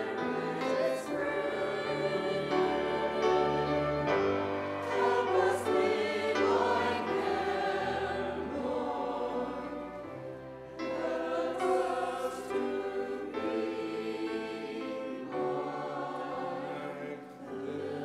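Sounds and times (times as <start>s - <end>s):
church choir singing: 0.0s - 18.0s
piano: 0.0s - 18.0s
violin: 0.0s - 18.0s.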